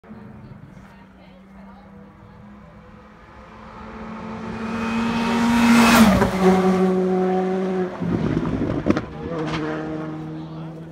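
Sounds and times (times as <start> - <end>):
rally car engine at full throttle: 0.0 - 10.9.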